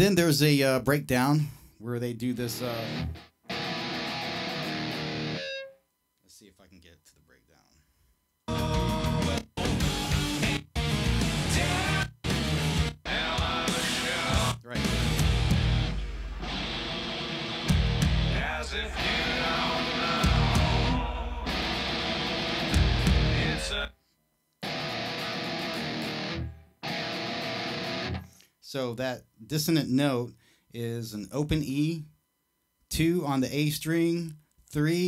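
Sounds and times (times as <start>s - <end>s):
heavy rock with distorted guitar: 2.8s - 5.5s, 8.7s - 23.9s, 24.6s - 28.3s.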